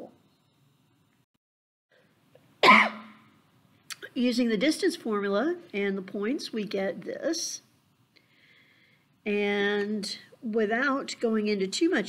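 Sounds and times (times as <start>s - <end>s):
person clearing throat: 2.6s - 3.2s.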